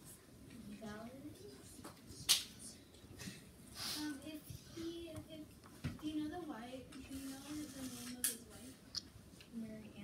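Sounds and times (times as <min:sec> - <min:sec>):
short sharp hiss: 0:03.8 - 0:04.2.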